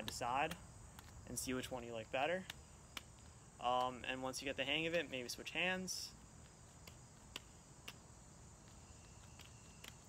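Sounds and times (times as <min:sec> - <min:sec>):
juggling balls caught in hand: 0:00.0 - 0:01.7, 0:02.3 - 0:05.4, 0:06.7 - 0:10.0.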